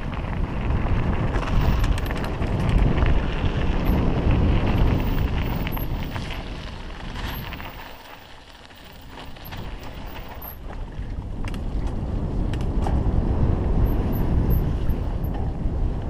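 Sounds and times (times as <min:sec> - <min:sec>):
bike rattles and clicks: 0:00.0 - 0:16.0
bike tyres rolling on gravel: 0:00.0 - 0:16.0
wind buffeting microphone: 0:00.0 - 0:16.0.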